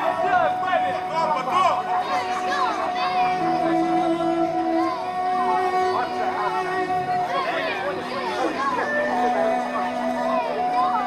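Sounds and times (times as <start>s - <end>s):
voices chattering: 0.0s - 11.0s
bowed fiddle note: 1.8s - 11.0s.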